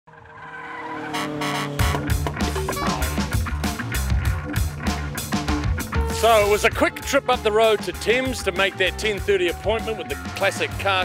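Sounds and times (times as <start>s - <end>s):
tire screech bursts: 0.1s - 2.2s
intro music: 1.4s - 11.0s
heavy bass beat: 1.8s - 11.0s.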